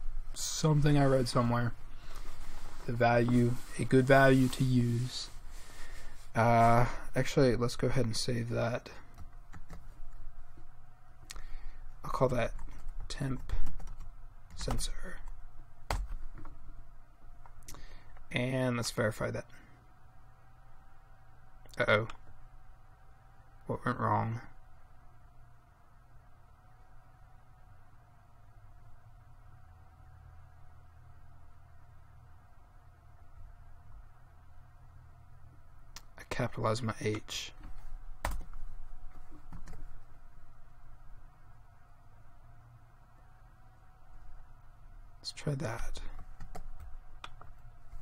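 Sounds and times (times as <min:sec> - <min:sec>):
faint low hum: 0:00.0 - 0:48.0.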